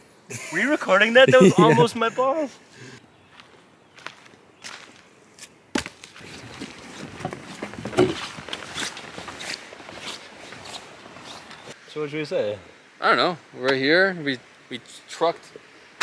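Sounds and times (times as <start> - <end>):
footsteps on wooden planks: 5.8 - 11.8.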